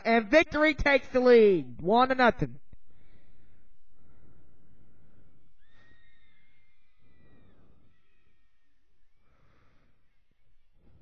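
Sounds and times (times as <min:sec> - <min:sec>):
faint high-pitched call: 0:05.6 - 0:09.3.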